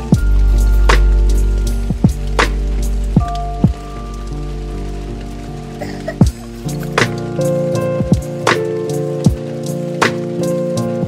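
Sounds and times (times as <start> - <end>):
bass line: 0.0 - 5.5
jazzy chords: 0.0 - 11.0
sharp drum hits: 0.1 - 4.0, 6.2 - 7.4.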